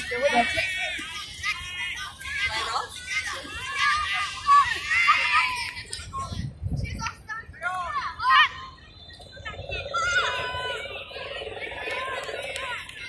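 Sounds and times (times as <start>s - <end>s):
women shouting and calling: 0.0s - 5.8s.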